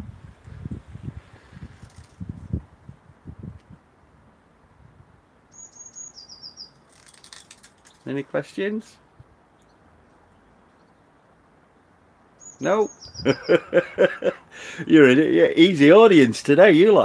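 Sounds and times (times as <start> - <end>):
small bird chirping: 5.5 - 8.1, 9.5 - 11.1, 12.4 - 13.8.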